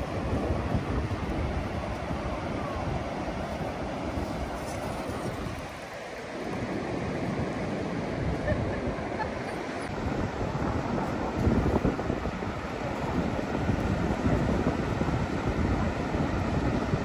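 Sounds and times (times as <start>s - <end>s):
surf breaking on shore: 0.0s - 17.0s
wind buffeting microphone: 0.0s - 17.0s.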